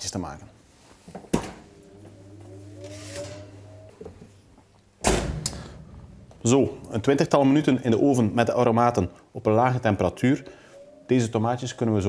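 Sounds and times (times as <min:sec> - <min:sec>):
motor hum with rising whine: 0:01.4 - 0:04.5.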